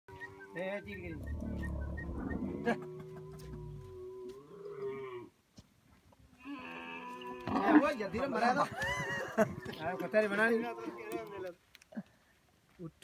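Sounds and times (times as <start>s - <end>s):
camels groaning: 0.8s - 5.3s, 6.4s - 8.4s, 9.0s - 11.6s.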